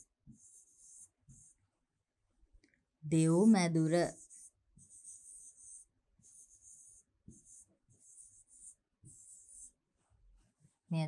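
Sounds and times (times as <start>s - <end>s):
pen scratching on board: 0.0s - 1.7s, 3.9s - 10.9s.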